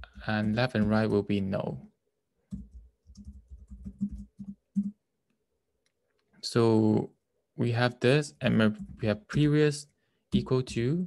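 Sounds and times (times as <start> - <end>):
typing on computer keyboard: 2.5 - 5.0.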